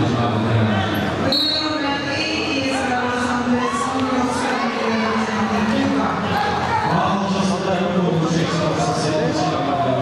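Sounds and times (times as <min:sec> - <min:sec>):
crowd voices in large hall: 0:00.0 - 0:10.0.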